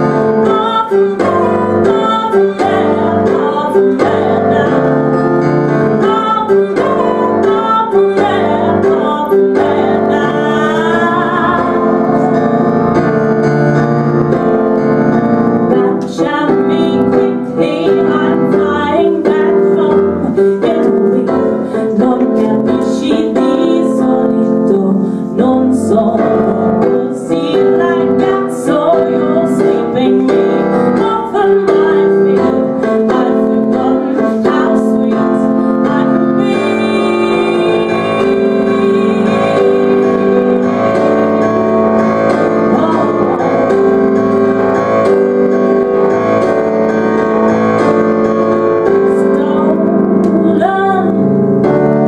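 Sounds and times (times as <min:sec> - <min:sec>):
woman singing: 0:00.0 - 0:12.8, 0:15.7 - 0:45.2, 0:47.1 - 0:52.0
piano chords: 0:00.0 - 0:52.0.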